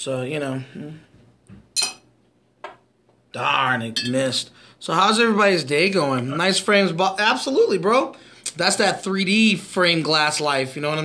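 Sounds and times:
beer bottle clinks: 0:01.8 - 0:02.0.

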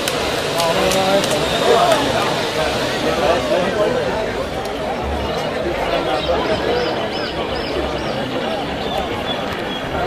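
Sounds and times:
voices calling out and talking: 0:00.0 - 0:10.0.

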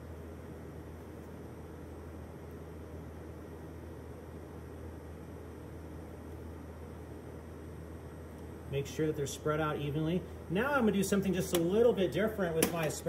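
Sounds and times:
room tone hum and hiss: 0:00.0 - 0:13.0.

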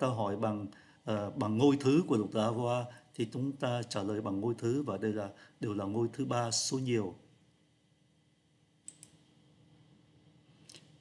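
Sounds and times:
computer mouse clicks: 0:08.8 - 0:09.2.

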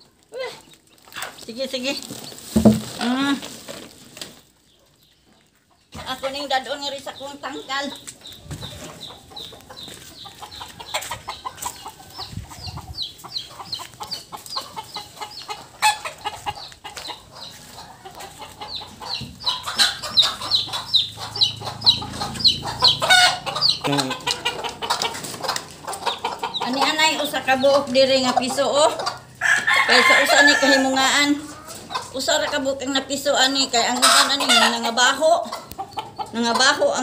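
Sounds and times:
chickens peeping: 0:00.0 - 0:37.0.

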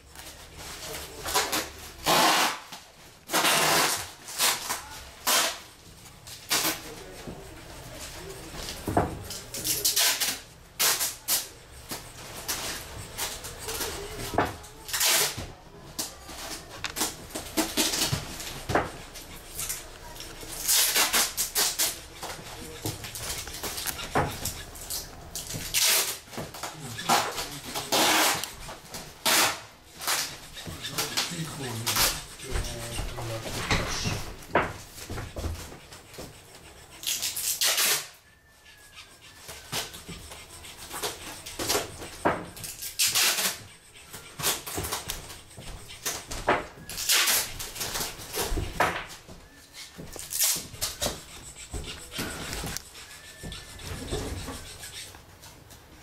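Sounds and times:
chisel scraping wood: 0:08.0 - 0:55.2.

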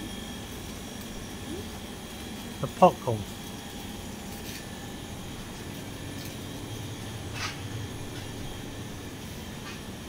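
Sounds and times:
high-pitched whine: 0:00.0 - 0:10.0
room hum and hiss: 0:00.0 - 0:10.0.

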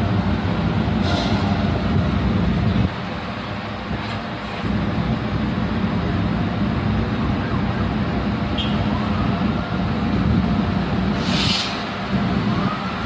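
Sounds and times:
train engine humming: 0:00.0 - 0:13.0.

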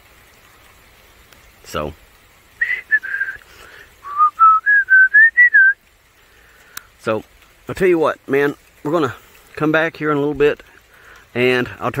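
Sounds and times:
person whistling a tune: 0:02.6 - 0:03.4, 0:04.0 - 0:05.8.

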